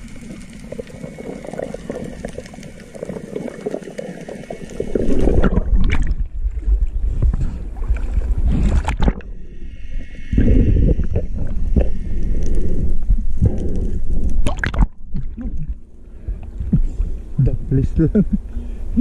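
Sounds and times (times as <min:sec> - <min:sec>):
muffled underwater sloshing: 0:00.0 - 0:09.4, 0:10.3 - 0:17.4.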